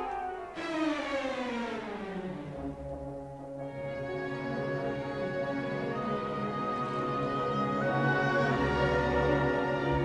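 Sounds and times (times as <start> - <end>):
orchestra playing descending passage: 0.0 - 10.0.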